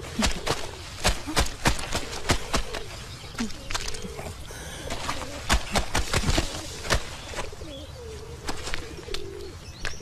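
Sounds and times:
pigeon cooing: 0:00.0 - 0:09.6.

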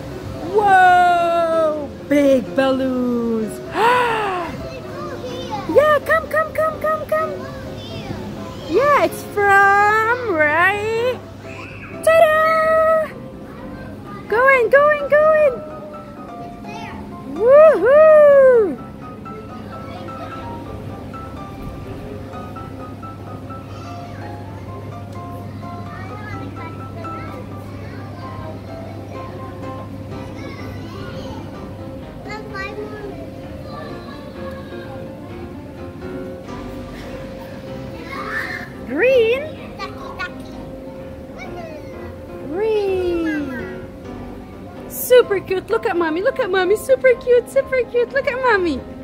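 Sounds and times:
faint background music: 0:00.0 - 0:49.0
young child exclaiming: 0:03.7 - 0:08.1, 0:16.7 - 0:18.8, 0:38.0 - 0:38.8, 0:41.4 - 0:43.7.

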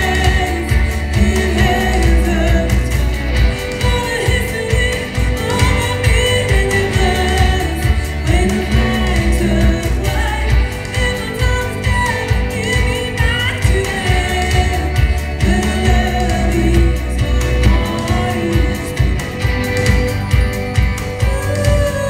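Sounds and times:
person singing: 0:00.0 - 0:20.0, 0:21.0 - 0:22.0
electric guitar: 0:00.0 - 0:22.0.

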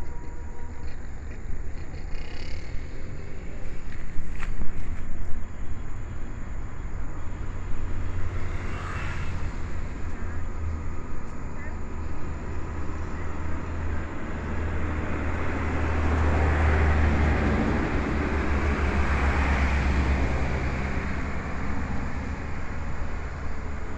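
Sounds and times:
motor vehicle passing: 0:00.0 - 0:23.9.

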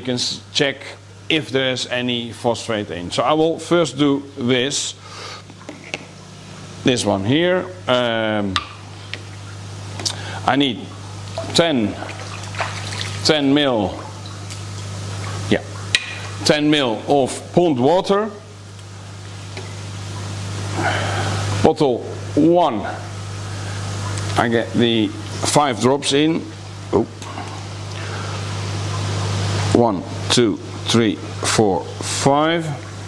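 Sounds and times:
aerated pond water rushing: 0:00.0 - 0:33.0
low electrical pump hum: 0:00.0 - 0:33.0
pond water rushing: 0:06.9 - 0:17.8.

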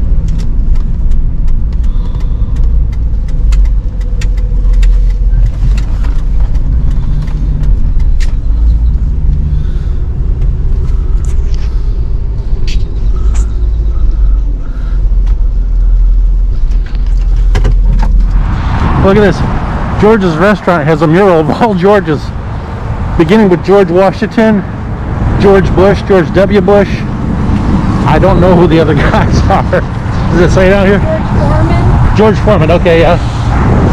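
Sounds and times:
vehicle engine and road rumble: 0:00.0 - 0:33.9.

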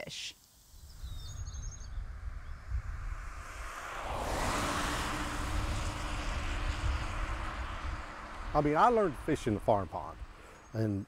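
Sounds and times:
rush of noise: 0:00.7 - 0:10.7
low rumble: 0:00.8 - 0:10.7.

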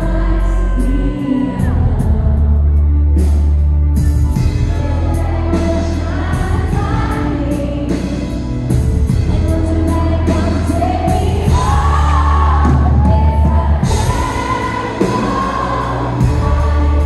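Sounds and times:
person singing: 0:00.0 - 0:03.2
drums: 0:00.0 - 0:17.0
heavy bass line: 0:00.0 - 0:17.0
live pop-rock band: 0:00.0 - 0:17.0.

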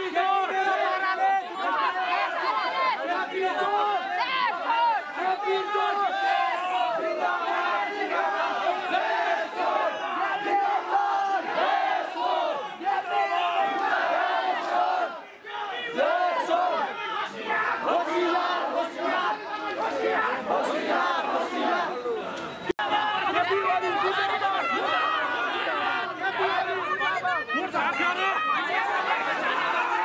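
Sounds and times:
crowd shouting together: 0:00.0 - 0:30.0.

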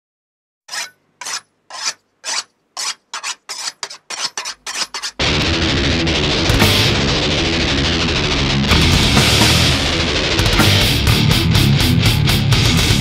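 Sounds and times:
hand saw cutting wood: 0:00.7 - 0:05.2
heavy metal music: 0:05.2 - 0:13.0.

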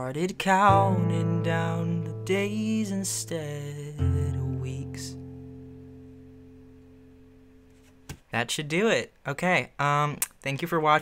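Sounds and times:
acoustic guitar chord ringing: 0:00.5 - 0:08.1.

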